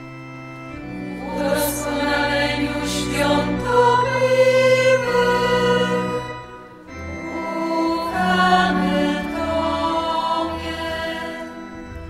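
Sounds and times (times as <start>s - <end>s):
women's choir singing a hymn: 0.9s - 12.0s.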